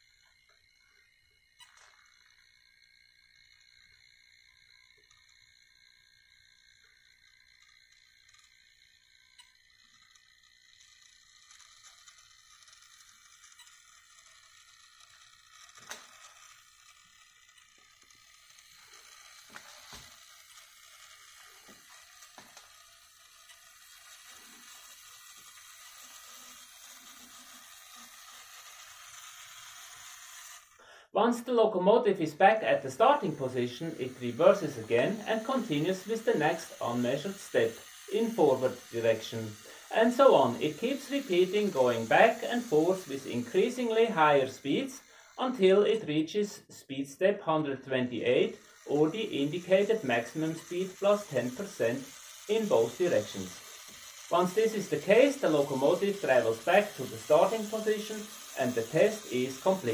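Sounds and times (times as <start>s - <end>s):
model train motor whine: 0.0s - 59.9s.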